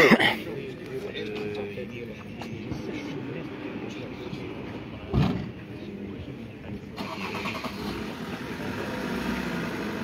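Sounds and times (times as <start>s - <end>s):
car engine humming: 7.0s - 10.0s.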